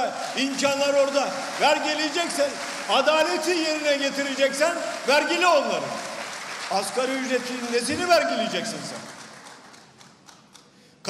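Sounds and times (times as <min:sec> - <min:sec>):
audience applause: 0:00.0 - 0:10.3.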